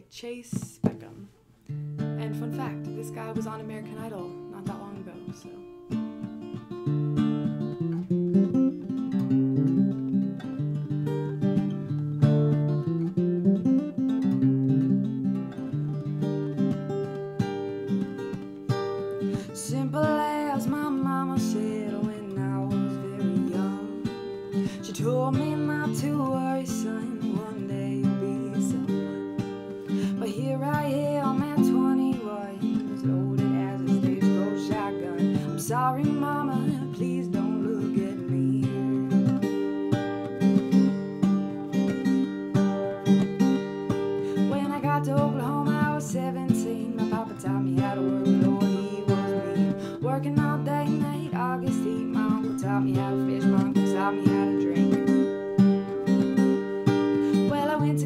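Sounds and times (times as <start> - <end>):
woman singing: 0.0 - 1.2, 2.2 - 5.9, 19.1 - 40.0, 43.0 - 58.0
acoustic guitar strumming: 0.4 - 58.0.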